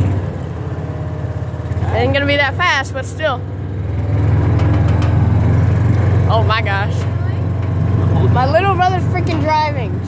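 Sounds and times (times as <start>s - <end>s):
ride-on vehicle engine running: 0.0s - 10.0s.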